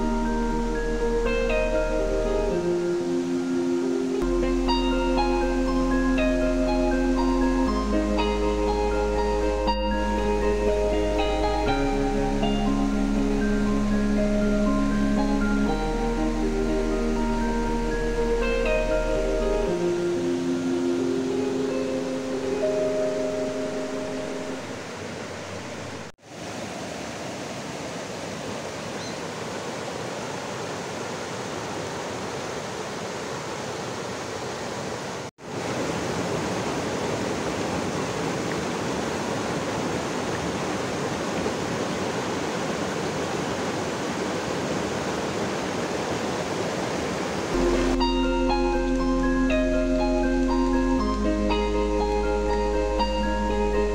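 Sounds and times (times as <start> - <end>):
soft background music: 0.0 - 24.8, 47.6 - 53.9
stream rushing over stones: 22.0 - 50.7.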